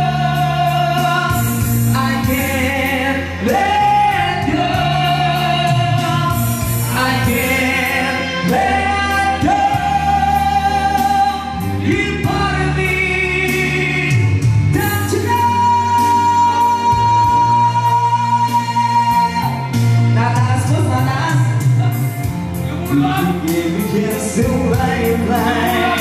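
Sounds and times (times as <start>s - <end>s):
backing track: 0.0s - 26.0s
man singing rock ballad: 0.0s - 26.0s.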